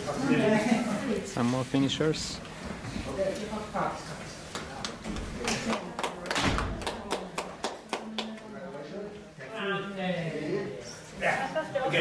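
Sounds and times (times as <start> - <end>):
murmur of voices in a hall: 0.0 - 12.0
hand claps: 4.5 - 8.5.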